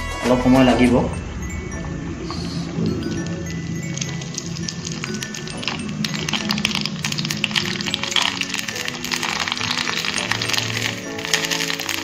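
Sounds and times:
background music: 0:00.0 - 0:12.0
dough deep-frying in hot oil: 0:02.3 - 0:12.0.

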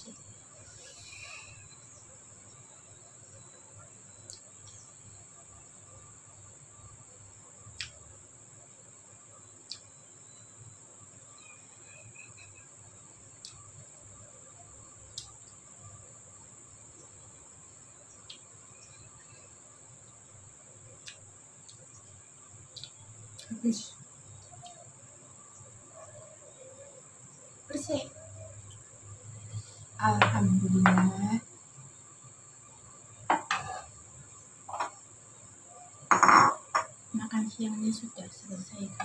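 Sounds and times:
low background hum: 0:00.0 - 0:39.0.

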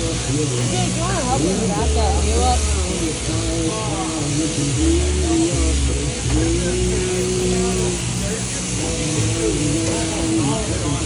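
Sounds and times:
electric shearing handpiece running: 0:00.0 - 0:11.0.

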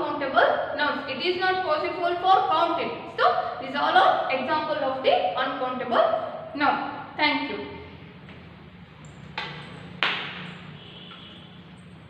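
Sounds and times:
sharp knocks: 0:09.3 - 0:11.3.

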